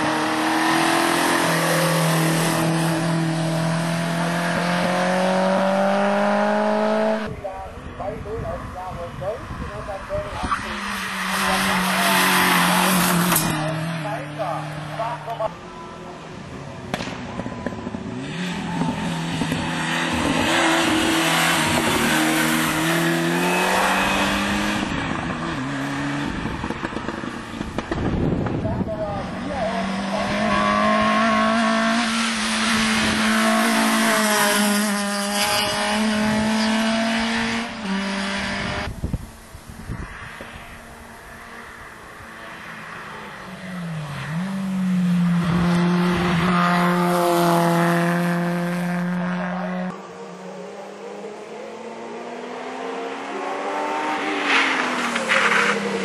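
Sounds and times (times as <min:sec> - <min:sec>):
racing car engines at full throttle: 0:00.0 - 0:56.0.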